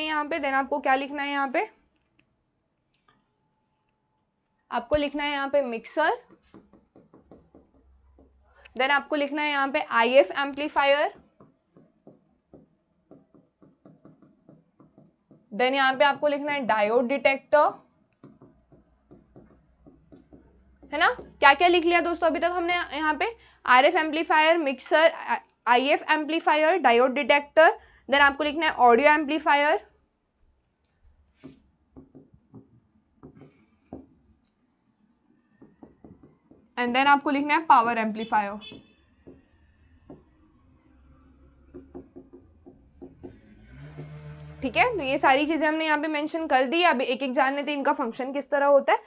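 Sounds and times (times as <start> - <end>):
stylus tapping on screen: 6.0 - 16.0, 18.1 - 22.8, 31.2 - 37.6, 38.2 - 43.4.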